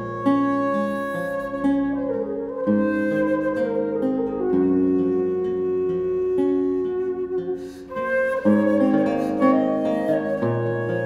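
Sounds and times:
plucked theorbo chords: 0.0s - 11.0s
wooden flute melody: 0.0s - 11.0s.

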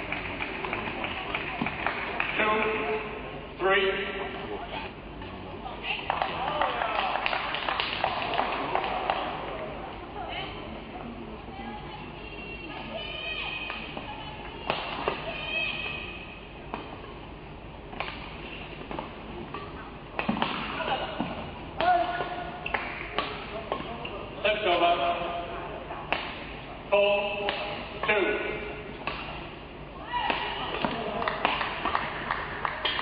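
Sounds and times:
racket striking shuttlecock: 17.9s - 23.9s, 29.0s - 29.5s
crowd noise with shouts: 29.9s - 31.6s.

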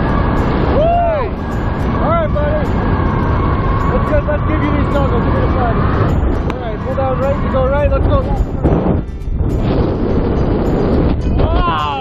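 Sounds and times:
wind rushing over microphone: 0.0s - 12.0s.

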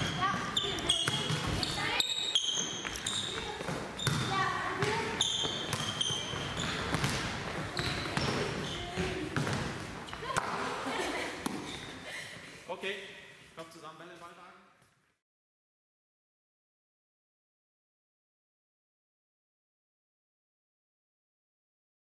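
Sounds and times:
balls bouncing on hall floor: 0.0s - 12.0s.

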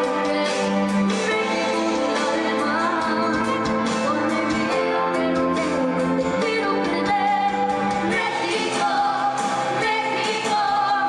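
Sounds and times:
girl singing into microphone: 0.0s - 11.0s
pop accompaniment: 0.0s - 11.0s.

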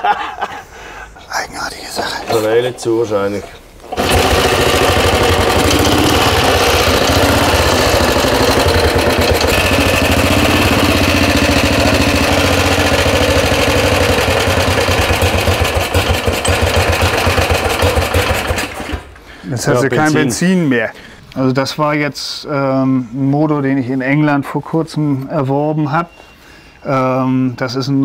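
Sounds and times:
motorcycle engine running: 3.9s - 19.0s.

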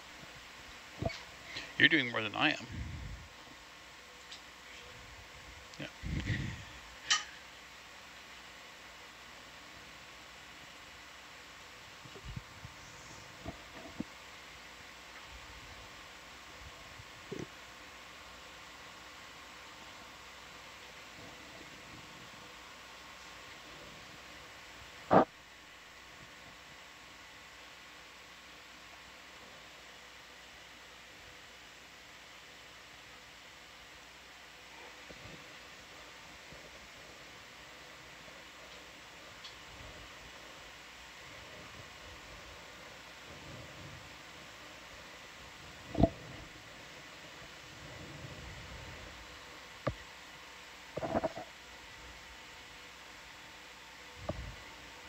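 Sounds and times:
intercom hiss with humming tones: 0.0s - 55.0s.

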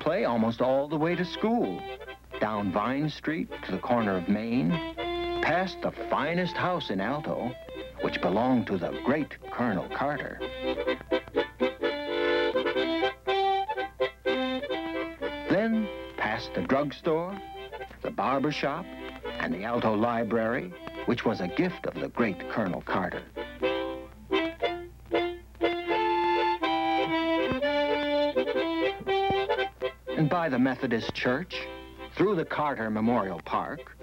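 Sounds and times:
harmonica playing chords: 0.0s - 34.0s.

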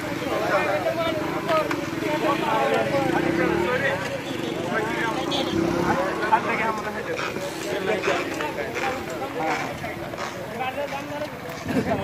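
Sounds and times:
men talking: 2.1s - 12.0s.

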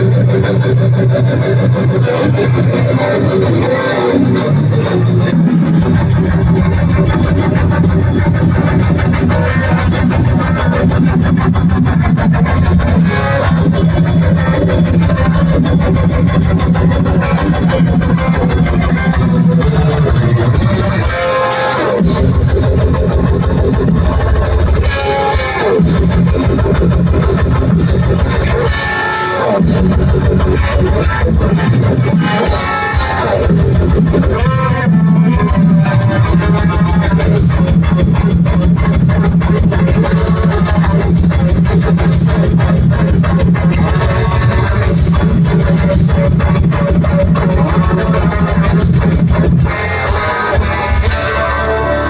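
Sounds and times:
electric guitar: 0.0s - 52.0s
live rock band playing: 0.0s - 52.0s
fast driving drums: 5.2s - 52.0s.

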